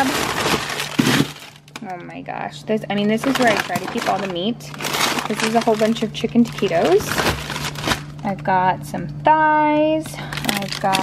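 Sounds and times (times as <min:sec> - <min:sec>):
frozen package thud: 0:00.0 - 0:01.8, 0:03.2 - 0:08.2, 0:10.2 - 0:11.0
plastic bags crackling and rustling: 0:00.0 - 0:01.9, 0:03.1 - 0:08.2, 0:10.2 - 0:11.0.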